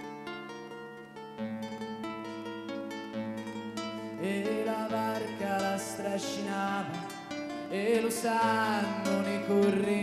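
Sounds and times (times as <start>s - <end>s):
classical guitar playing: 0.0s - 10.0s.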